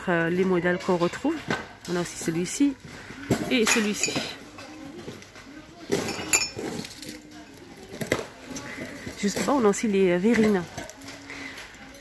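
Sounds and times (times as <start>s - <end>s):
ceramic mugs clinking: 3.6s - 4.8s, 6.0s - 6.9s.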